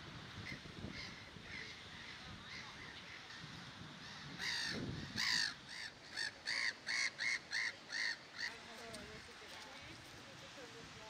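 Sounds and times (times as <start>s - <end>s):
crow cawing: 4.4s - 8.7s.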